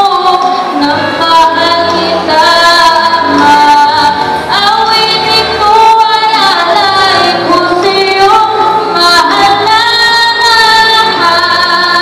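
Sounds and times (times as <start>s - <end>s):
girl singing into a microphone: 0.0s - 12.0s
musical accompaniment: 0.0s - 12.0s.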